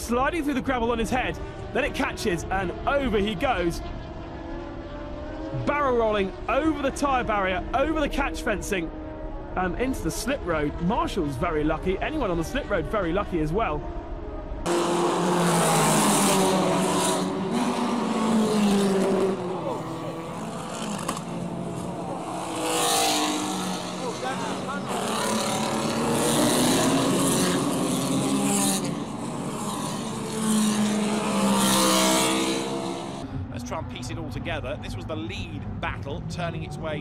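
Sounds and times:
racing car engines revving and passing: 0.0s - 37.0s
voices: 9.6s - 13.8s, 23.8s - 27.1s, 33.5s - 37.0s.

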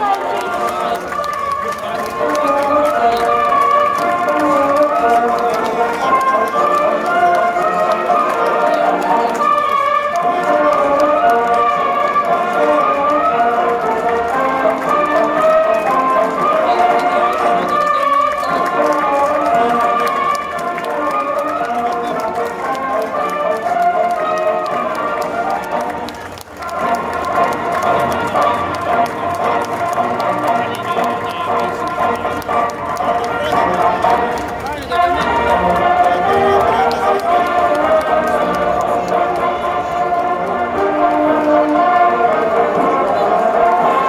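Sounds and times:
marching band playing: 0.0s - 44.0s.

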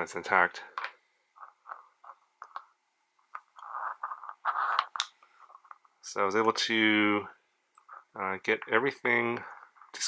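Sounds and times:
rubbing and scraping: 3.4s - 5.8s.

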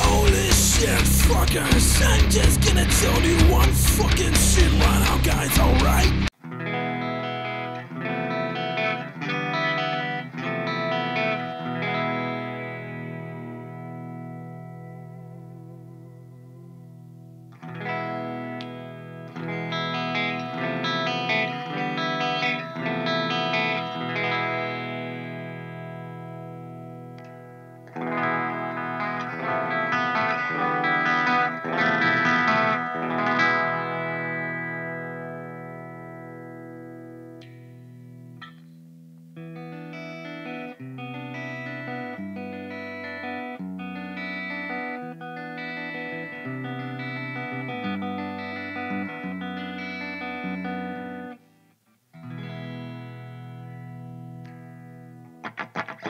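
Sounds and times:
electric guitar chords ringing: 0.0s - 56.0s
electric guitar picked notes: 0.0s - 56.0s.

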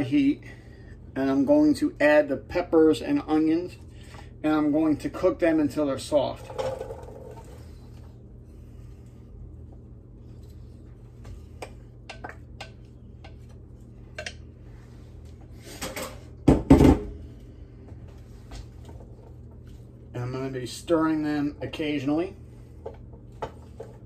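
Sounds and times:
steady low hum: 0.0s - 24.0s
spoon stirring in skillet: 6.8s - 15.5s.

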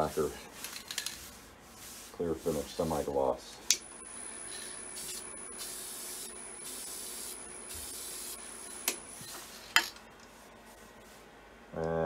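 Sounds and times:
aerosol can spraying: 5.0s - 9.1s.

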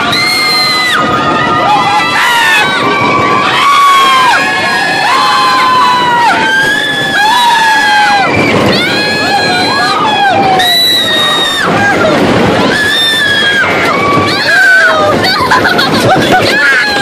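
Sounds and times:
roller coaster riders screaming: 0.0s - 17.0s.

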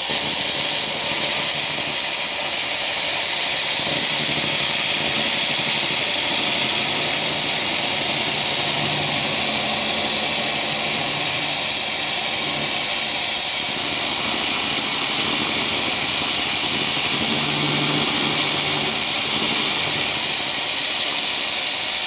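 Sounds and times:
fume extractor airflow: 0.0s - 22.0s
laser cleaner high hiss: 0.0s - 22.0s.

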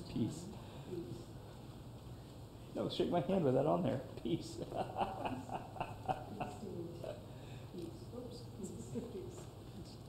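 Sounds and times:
soft laughter: 4.6s - 7.3s.

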